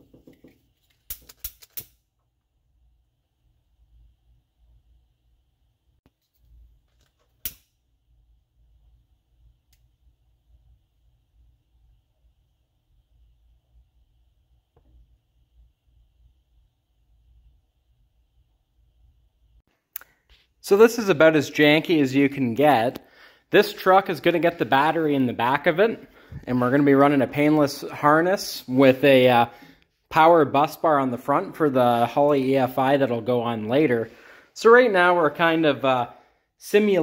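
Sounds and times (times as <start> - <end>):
clicks and handling of wires: 0.0 - 2.0, 6.1 - 7.7.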